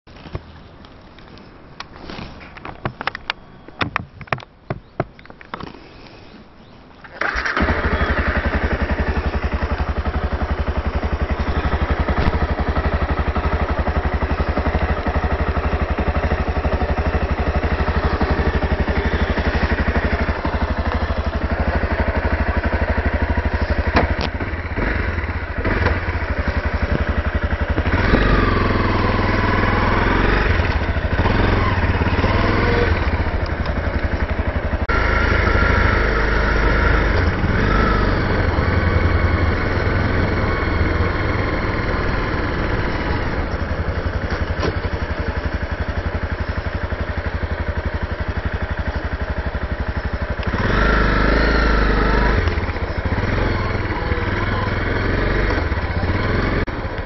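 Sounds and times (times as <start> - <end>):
motorcycle engine: 7.0 - 57.0.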